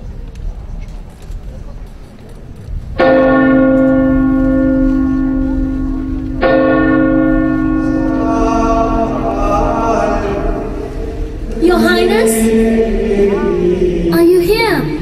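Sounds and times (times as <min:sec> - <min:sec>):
low rumble of hall noise: 0:00.0 - 0:15.0
church bell tolling: 0:02.9 - 0:13.7.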